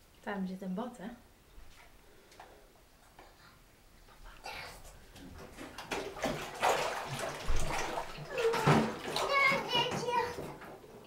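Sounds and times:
bathwater splashing: 4.4 - 11.0.

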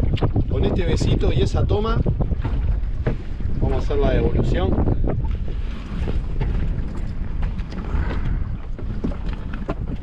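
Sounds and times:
water lapping around boat: 0.0 - 10.0
wind buffeting microphone: 0.0 - 10.0.

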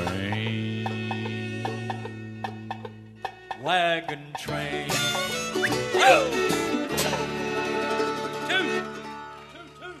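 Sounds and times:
bluegrass band playing: 0.0 - 10.0.

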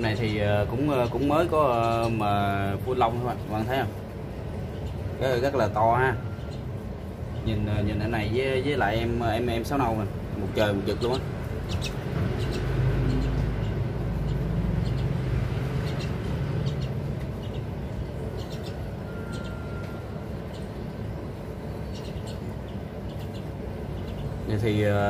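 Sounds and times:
birds chirping and clicking: 0.0 - 25.0
low background rumble: 0.0 - 25.0.

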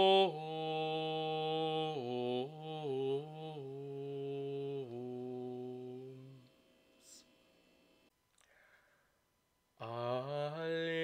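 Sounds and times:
man singing chant: 0.0 - 6.5, 9.8 - 11.0.

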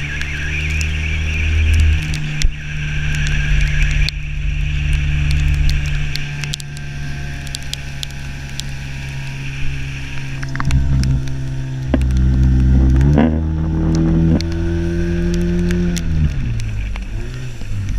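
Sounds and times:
water splashing: 0.0 - 17.9
outboard motor running: 0.1 - 17.9.

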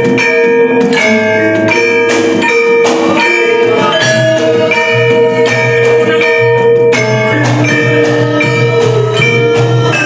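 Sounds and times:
gamelan ensemble playing: 0.0 - 10.0.

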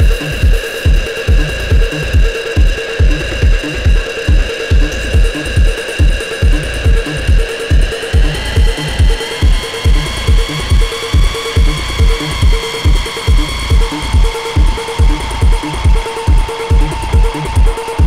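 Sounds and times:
kick drum: 0.0 - 18.0.

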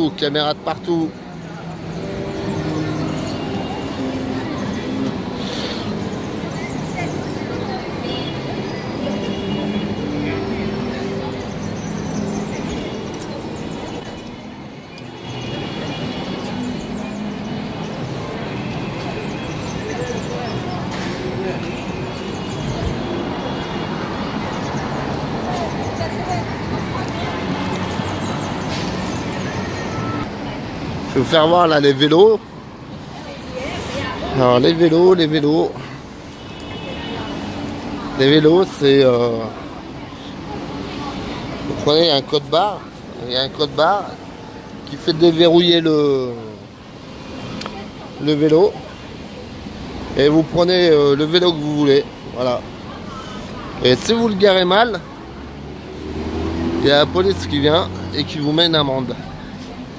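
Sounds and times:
street traffic passing: 0.0 - 59.9.

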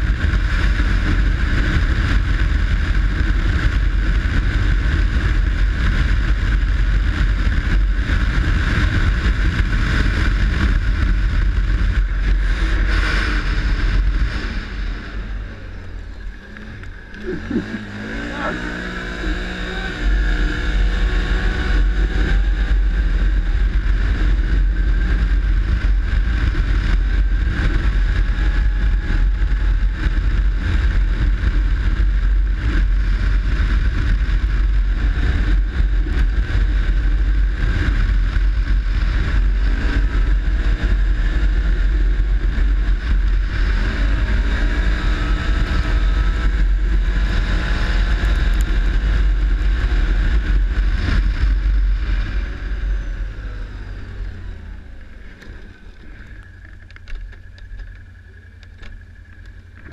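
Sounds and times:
atv engine revving: 0.0 - 59.9.

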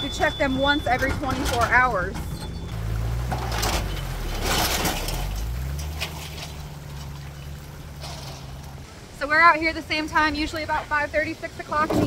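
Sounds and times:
vehicle engine idling: 0.0 - 11.0
water splashing and rushing: 2.7 - 9.2.

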